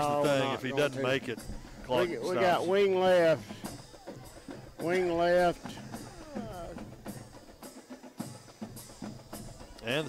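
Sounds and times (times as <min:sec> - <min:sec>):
drum beats: 0:00.0 - 0:10.0
deep bass drum: 0:01.4 - 0:02.1, 0:03.5 - 0:07.3.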